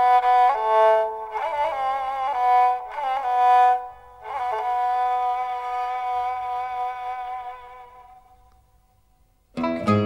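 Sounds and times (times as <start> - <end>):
bowed lyra melody: 0.0 - 8.6, 9.6 - 10.0.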